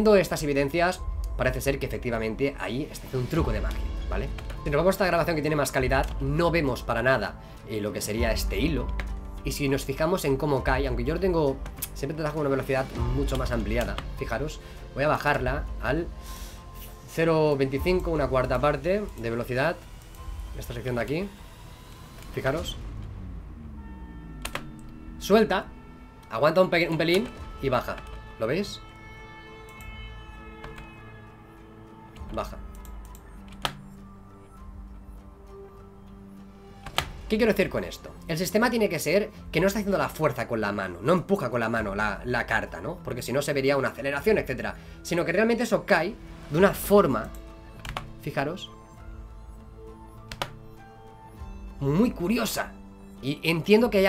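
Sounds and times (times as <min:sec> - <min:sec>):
faint background music: 0:00.0 - 0:54.0
low hum: 0:17.8 - 0:37.4.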